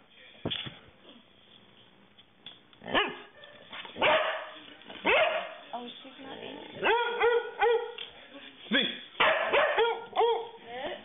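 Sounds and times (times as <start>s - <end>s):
dog barking: 2.8s - 5.7s, 6.8s - 8.0s, 9.2s - 10.6s.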